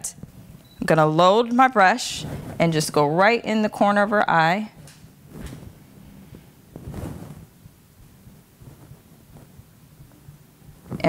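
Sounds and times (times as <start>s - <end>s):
soft rustles and bumps: 2.1s - 2.9s, 4.8s - 11.0s.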